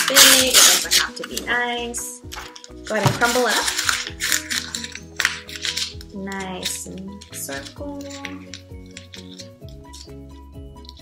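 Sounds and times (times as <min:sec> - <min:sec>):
paper being crumpled: 0:00.0 - 0:01.6, 0:02.3 - 0:10.2
background music sustained notes: 0:00.0 - 0:11.0.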